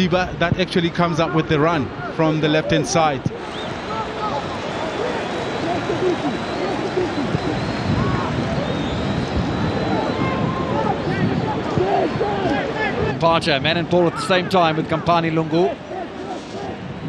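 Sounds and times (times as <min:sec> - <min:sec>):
players shouting: 0:01.0 - 0:17.0.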